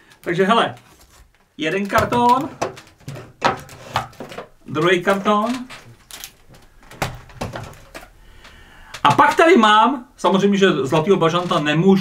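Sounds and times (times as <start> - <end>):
faint handling noise: 0.0 - 9.7.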